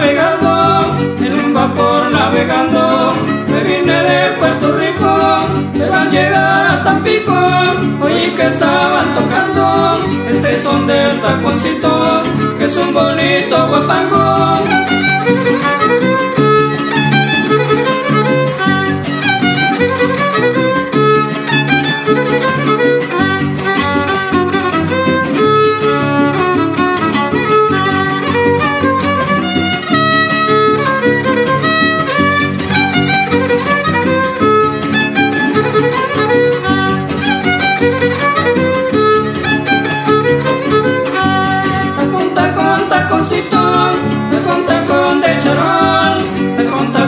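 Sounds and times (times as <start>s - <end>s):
guitars strumming: 0.0s - 47.0s
violin melody: 0.0s - 47.0s.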